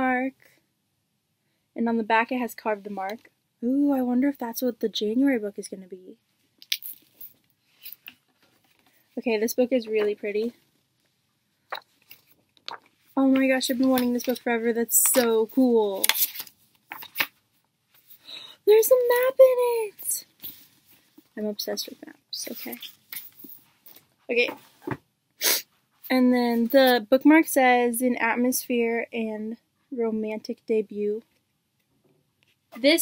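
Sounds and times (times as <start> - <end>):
book handling rustles: 7.1 - 9.0, 11.1 - 18.2.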